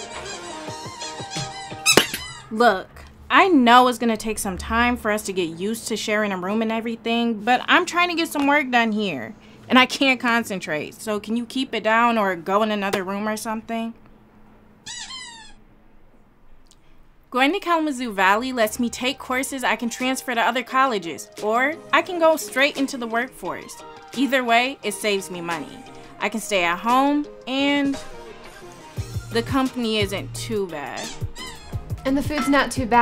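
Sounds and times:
music: 0:00.0 - 0:02.6, 0:18.1 - 0:33.0
high-pitched sliding squeaks: 0:01.8 - 0:02.5, 0:14.8 - 0:15.6, 0:31.0 - 0:31.8
small dog whining: 0:14.9 - 0:15.6, 0:31.0 - 0:32.0.

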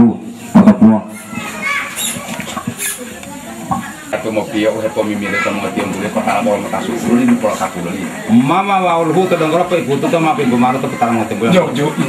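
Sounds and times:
people talking: 0:00.0 - 0:12.0
children's voices: 0:00.4 - 0:12.0.

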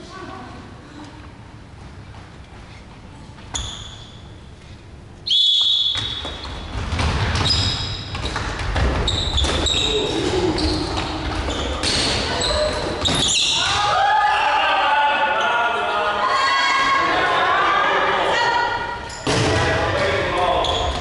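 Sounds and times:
referee's whistle blast: 0:05.3 - 0:06.2
balls thudding on wooden floor: 0:06.0 - 0:09.6
players shouting: 0:12.2 - 0:20.7.

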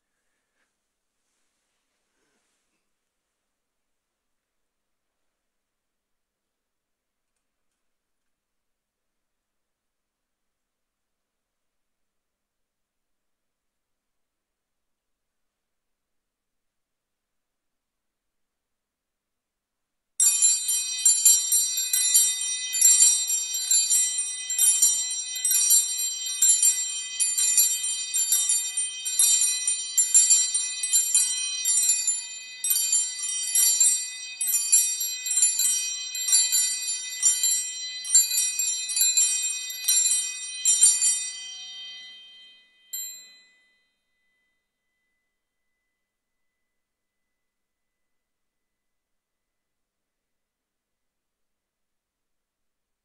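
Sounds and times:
altar bells jingling: 0:20.2 - 0:43.8.

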